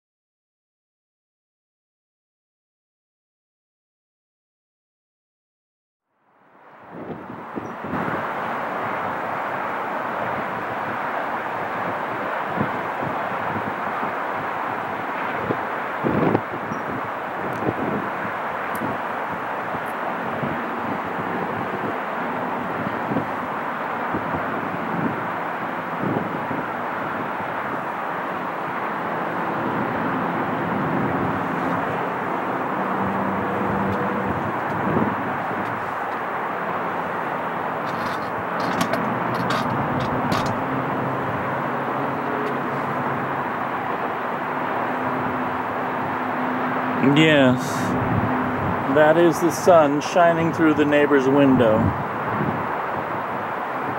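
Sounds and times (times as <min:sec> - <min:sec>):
distant freeway traffic: 0:06.2 - 0:53.9
low engine drone: 0:07.7 - 0:52.4.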